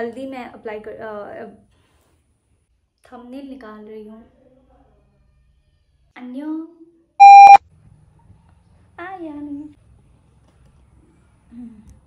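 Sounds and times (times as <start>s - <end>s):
electronic beep: 7.2s - 7.6s.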